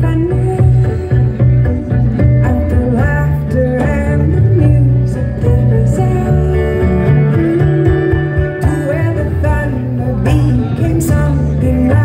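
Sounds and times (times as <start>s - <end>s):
hand drum: 0.0s - 12.0s
live country band playing: 0.0s - 12.0s
strong bass line: 0.0s - 12.0s.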